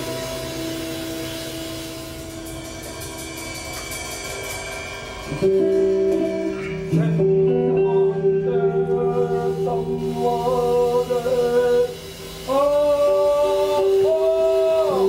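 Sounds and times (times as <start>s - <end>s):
plucked guitar: 0.0s - 15.0s
sustained droning tones: 0.0s - 15.0s
wavering singing: 0.0s - 15.0s.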